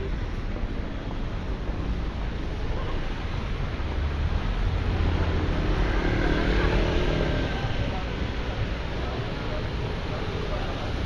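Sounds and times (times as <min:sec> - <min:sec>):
low traffic rumble: 0:00.0 - 0:11.0
motor scooter passing: 0:05.0 - 0:07.9.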